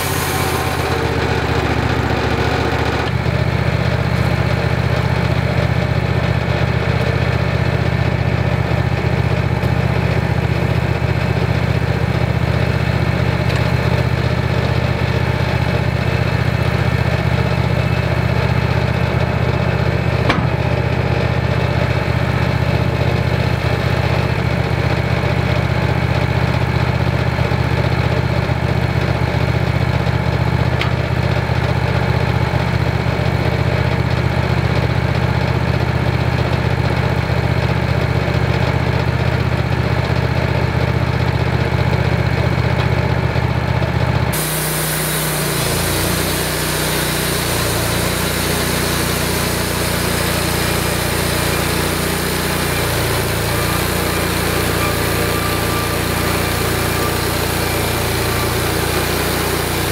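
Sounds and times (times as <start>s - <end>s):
sawmill engine running: 0.0s - 59.9s.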